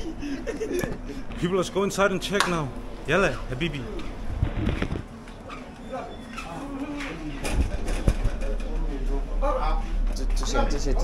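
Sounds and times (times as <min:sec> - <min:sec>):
group talking: 0:00.6 - 0:04.3, 0:05.2 - 0:11.0.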